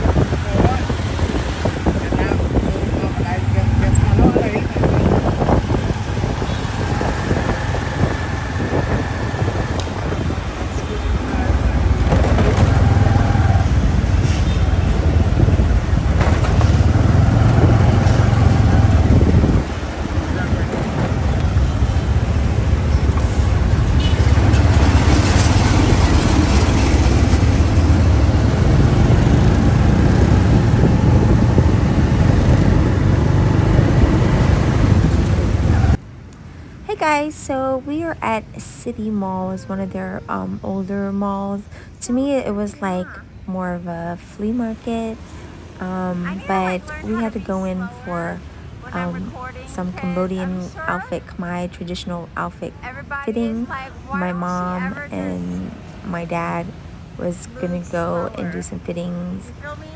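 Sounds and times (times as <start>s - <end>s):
engine rumble: 0.0s - 59.9s
motorbikes and cars: 0.0s - 59.9s
road and wind noise: 0.0s - 59.9s.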